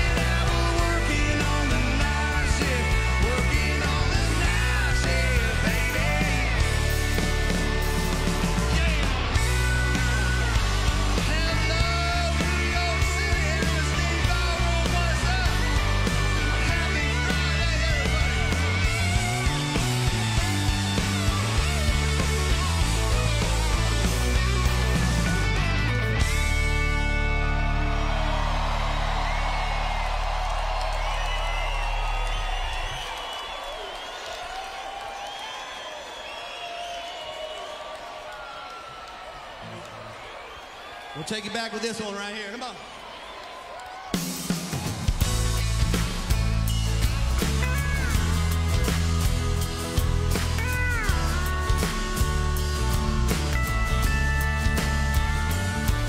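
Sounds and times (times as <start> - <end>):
live country band playing: 0.0 - 33.2, 41.1 - 42.8, 44.1 - 56.0
crowd cheering and whistling: 0.0 - 56.0.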